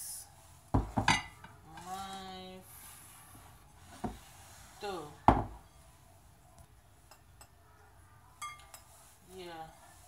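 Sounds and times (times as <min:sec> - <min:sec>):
glass bowl knocking on counter: 0:00.8 - 0:01.3, 0:05.3 - 0:05.6
glass clinking: 0:00.8 - 0:01.4, 0:07.0 - 0:07.6, 0:08.4 - 0:08.9.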